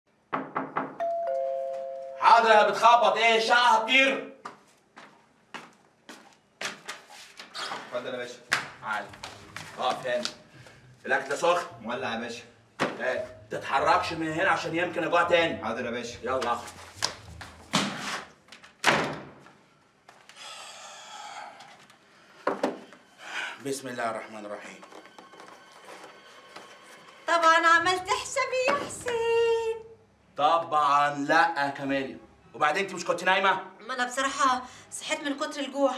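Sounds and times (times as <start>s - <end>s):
knocks on wooden door: 0.3s - 1.0s
ding-dong doorbell: 1.0s - 2.2s
wooden door slamming: 18.8s - 19.4s.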